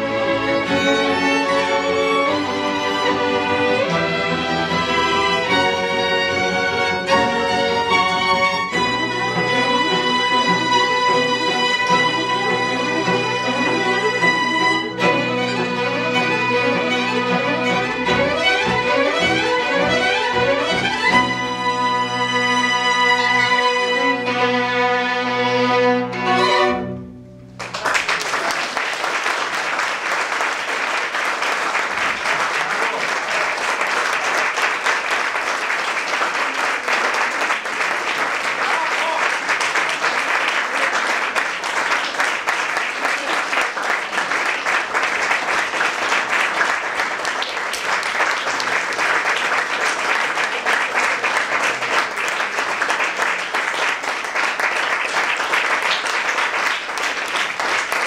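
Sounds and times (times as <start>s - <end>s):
audience applauding: 0.0s - 23.9s, 27.5s - 58.0s.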